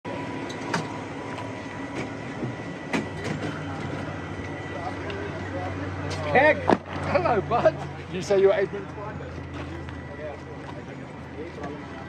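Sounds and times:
bus engine idling: 0.1s - 12.0s.

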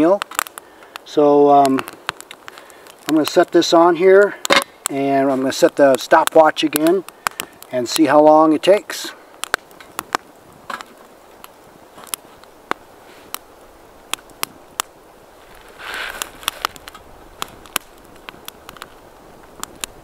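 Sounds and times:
twig fire crackling: 0.0s - 20.0s
brief rustle: 15.4s - 17.6s.

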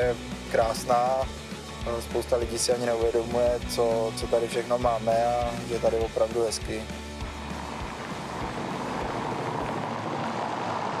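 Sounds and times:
car driving past: 7.2s - 11.0s.

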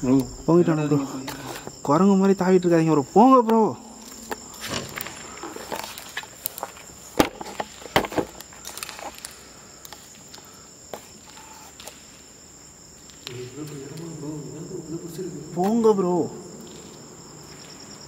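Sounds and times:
crickets chirping: 0.0s - 18.0s.

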